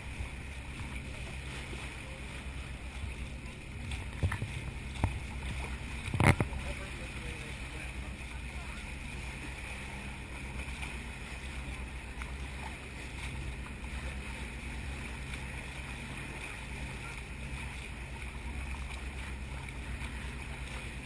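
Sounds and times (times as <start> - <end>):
low even hum: 0.0 - 21.0
water rushing at boat bow: 0.0 - 21.0.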